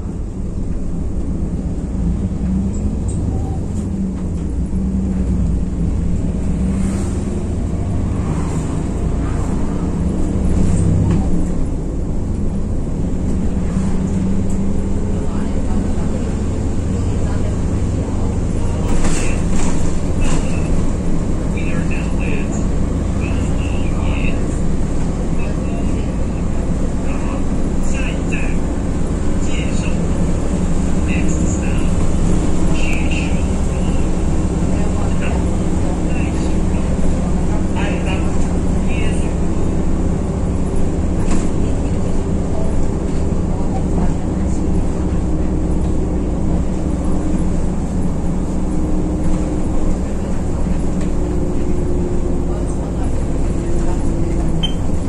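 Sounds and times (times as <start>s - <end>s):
bus engine and road drone: 0.0s - 55.0s.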